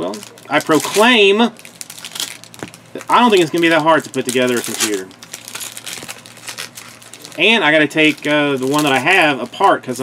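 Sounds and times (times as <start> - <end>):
cards rustling and crinkling: 0.1 - 10.0.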